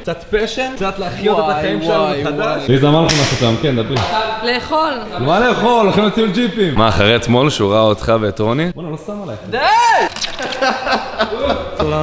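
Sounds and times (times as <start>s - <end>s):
man talking: 0.0s - 4.4s, 5.2s - 9.6s.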